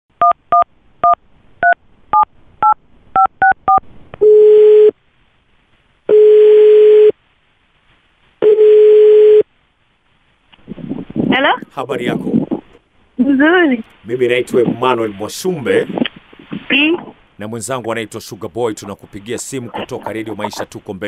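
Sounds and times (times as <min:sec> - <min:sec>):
phone ringing tones: 0:06.1 - 0:07.1, 0:08.4 - 0:09.4.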